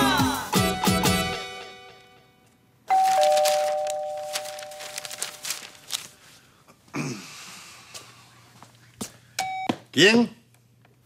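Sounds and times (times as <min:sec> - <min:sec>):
two-tone door chime: 0:02.9 - 0:05.1
newspaper pages rustling: 0:02.9 - 0:06.5.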